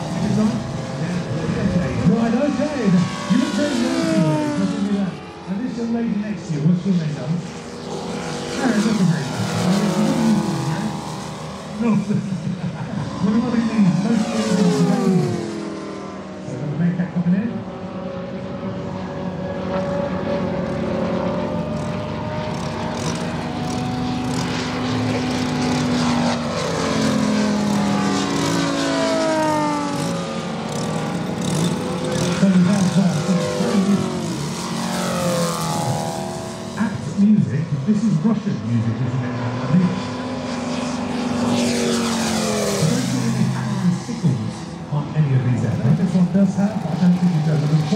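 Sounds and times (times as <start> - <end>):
model plane engines droning: 0.0 - 47.9.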